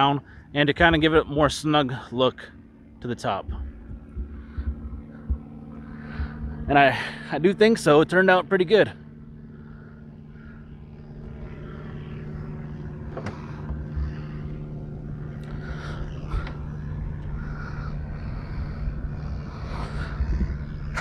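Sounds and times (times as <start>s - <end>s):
engine drone with low hum: 0.0s - 21.0s.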